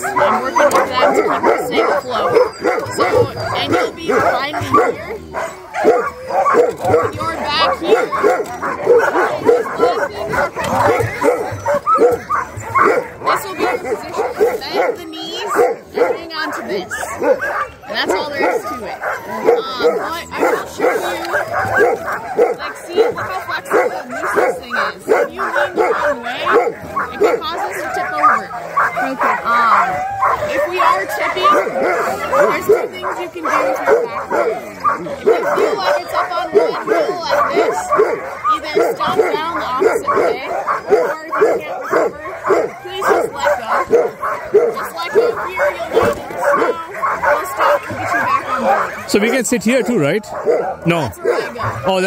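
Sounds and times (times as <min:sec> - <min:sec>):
sled dogs barking and yipping: 0:00.0 - 0:52.0.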